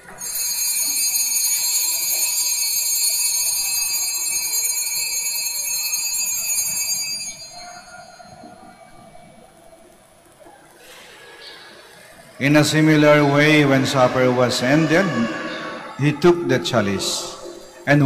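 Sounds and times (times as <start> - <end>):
altar bells ringing: 0.0 - 9.4, 12.8 - 18.0.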